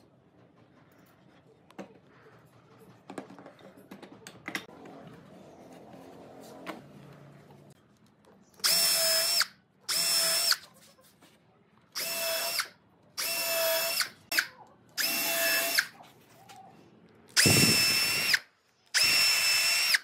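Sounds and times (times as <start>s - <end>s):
cordless drill whining: 8.6s - 10.6s, 12.0s - 14.4s, 15.0s - 15.9s, 17.4s - 18.4s, 19.0s - 20.0s.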